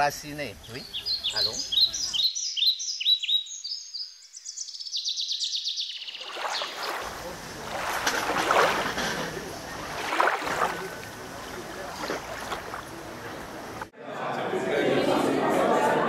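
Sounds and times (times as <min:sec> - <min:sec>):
songbird chirping and trilling: 0:00.0 - 0:07.2.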